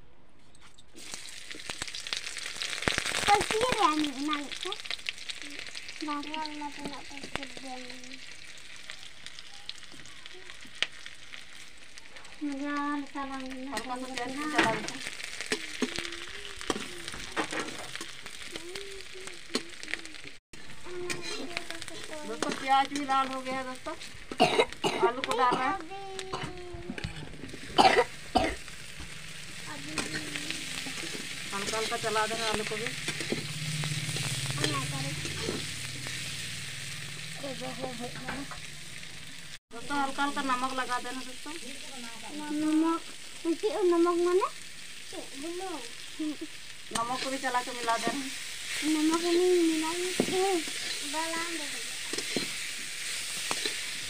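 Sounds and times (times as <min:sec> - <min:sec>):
onions sizzling in hot oil: 0:01.0 - 0:54.0
loud coughs: 0:24.4 - 0:25.6, 0:27.8 - 0:28.6.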